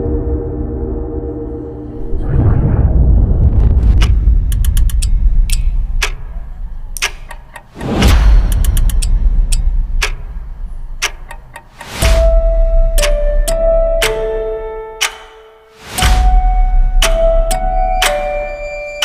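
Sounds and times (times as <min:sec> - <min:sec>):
whoosh: 0:02.0 - 0:05.5
deep low boom and rumble: 0:02.0 - 0:07.0
sharp ticking clicks: 0:03.8 - 0:19.0.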